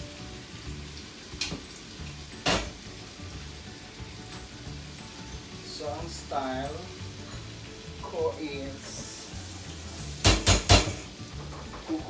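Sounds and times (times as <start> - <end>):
utensil knocking on pot: 10.2 - 11.8.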